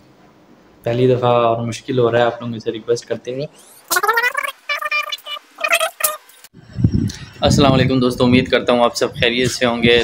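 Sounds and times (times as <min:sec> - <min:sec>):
high-pitched voice bursts: 0:03.9 - 0:06.2.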